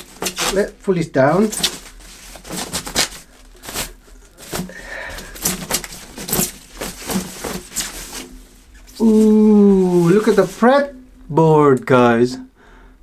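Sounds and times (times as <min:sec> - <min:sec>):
paper wrapping crinkling: 0:00.0 - 0:10.9.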